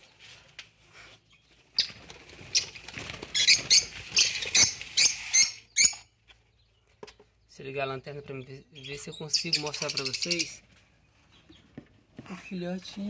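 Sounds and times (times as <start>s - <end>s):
small birds rasping chirps: 0.0s - 13.0s.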